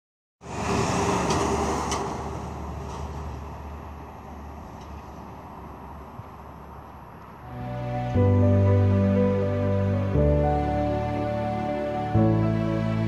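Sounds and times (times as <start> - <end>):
vehicle passing close by: 0.4 - 6.8
traffic rumble: 0.4 - 13.0.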